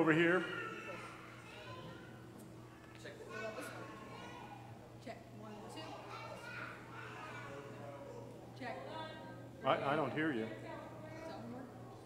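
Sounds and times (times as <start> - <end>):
faint indistinct voices: 0.0 - 12.0
children chattering: 0.2 - 9.5.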